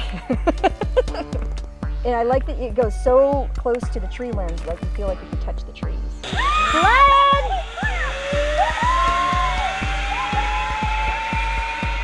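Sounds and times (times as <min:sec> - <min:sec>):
background music with beat: 0:00.0 - 0:12.0
zipline pulleys whining on cable: 0:06.2 - 0:12.0.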